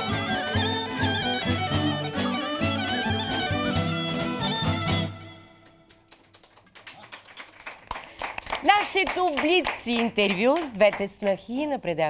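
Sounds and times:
people clapping: 0.0 - 11.8.

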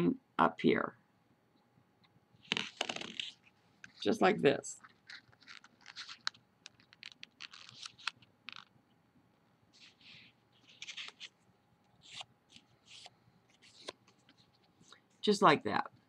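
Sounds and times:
paper bill crinkling: 2.5 - 3.4, 4.8 - 8.7, 9.8 - 11.4.

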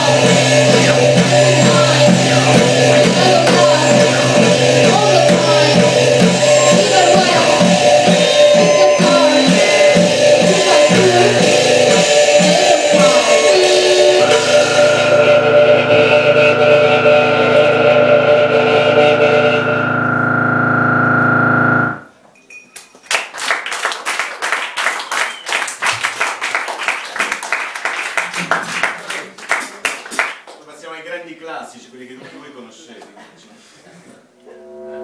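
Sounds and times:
electronic band playing: 0.0 - 22.1
audience applauding: 22.8 - 30.7.

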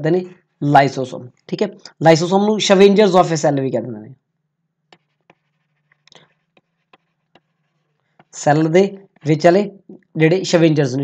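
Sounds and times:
stylus tapping on pen tablet: 4.9 - 8.4.

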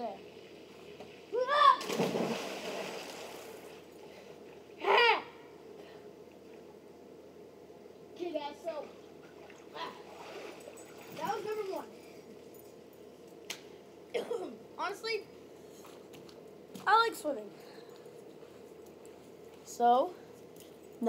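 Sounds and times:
child calling out: 1.3 - 1.8, 4.8 - 5.4.

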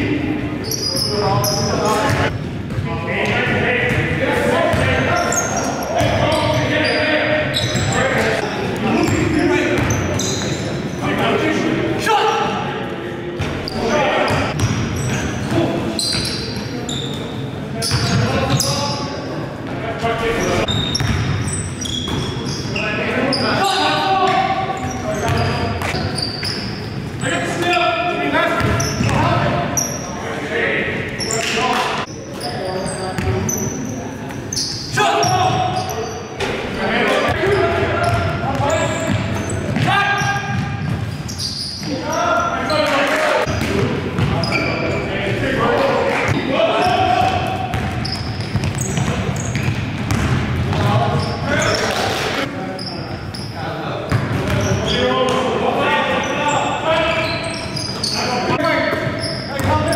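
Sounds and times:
basketball bouncing on hardwood floor: 47.7 - 50.9.

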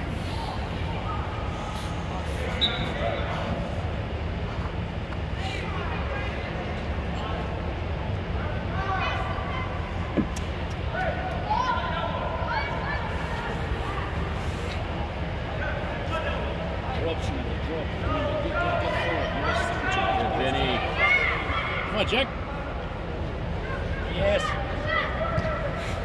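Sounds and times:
steady low hum: 0.0 - 26.0
people shouting and calling out: 17.9 - 26.0.

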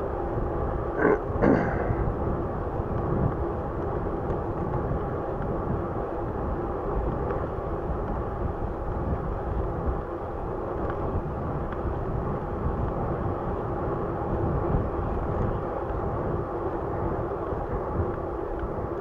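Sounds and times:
bicycle tyre hum on pavement: 0.0 - 19.0
wind rumbling on microphone: 0.0 - 19.0.

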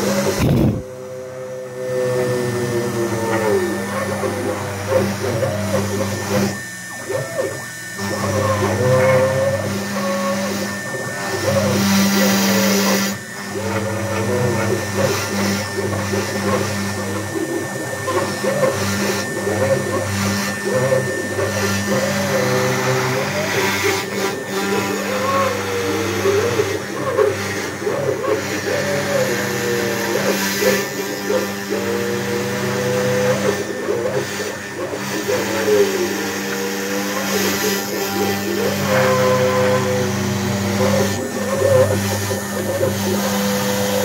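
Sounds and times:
router spindle humming: 0.0 - 44.0
stepper motors whining: 0.0 - 44.0.

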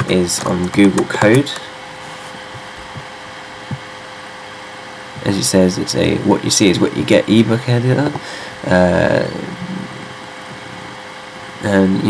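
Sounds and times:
faint hum: 0.0 - 12.0.

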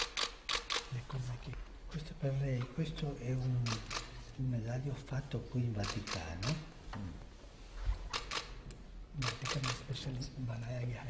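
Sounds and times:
camera shutters clicking: 0.0 - 0.9, 3.6 - 4.2, 5.8 - 6.7, 8.1 - 8.6, 9.2 - 9.9.

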